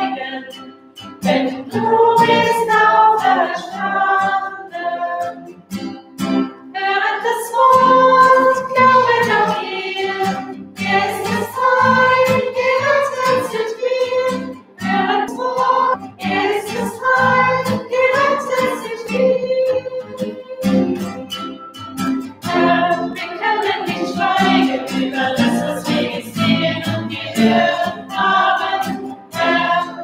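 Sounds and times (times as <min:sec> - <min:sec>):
group singing a hymn: 0:00.0 - 0:05.6, 0:06.7 - 0:21.3, 0:22.4 - 0:30.0
strummed acoustic guitar: 0:00.0 - 0:30.0.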